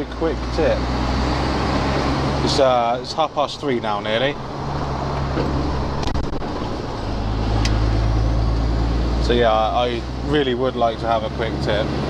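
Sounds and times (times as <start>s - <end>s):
diesel lorry engine droning: 0.0s - 12.0s.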